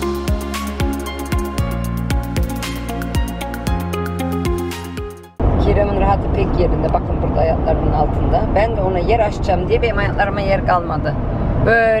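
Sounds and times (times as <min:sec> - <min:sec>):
background music: 0:00.0 - 0:05.4
road and engine noise in a car: 0:05.4 - 0:12.0.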